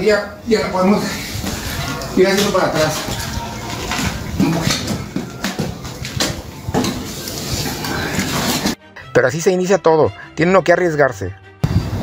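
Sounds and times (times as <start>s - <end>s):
cement scraping in wheelbarrow: 6.8s - 8.8s.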